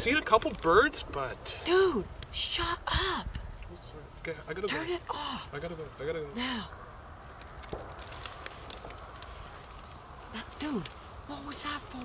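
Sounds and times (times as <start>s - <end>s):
faint clicks and rustles: 0.0s - 1.3s, 7.2s - 12.0s
wind rumble on microphone: 0.0s - 3.9s.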